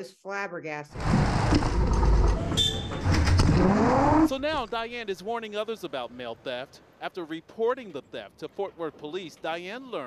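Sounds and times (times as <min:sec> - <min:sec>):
machinery rumbling: 0:00.9 - 0:05.1
motor whine rising in pitch: 0:01.0 - 0:04.5.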